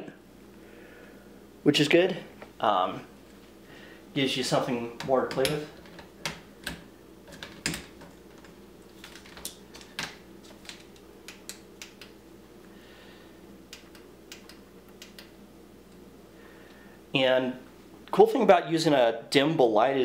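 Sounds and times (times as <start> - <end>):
faint low hum: 0.0 - 20.0
hands clicking and tapping: 7.4 - 12.2.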